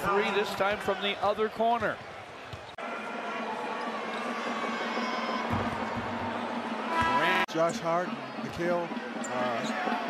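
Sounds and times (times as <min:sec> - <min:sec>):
crowd noise: 0:00.0 - 0:10.0
faint music over loudspeakers: 0:02.8 - 0:10.0.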